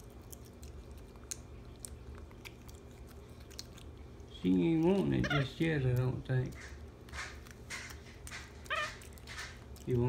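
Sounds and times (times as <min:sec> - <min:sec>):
low steady hum: 0:00.0 - 0:10.0
monkey chewing clicks: 0:00.0 - 0:10.0.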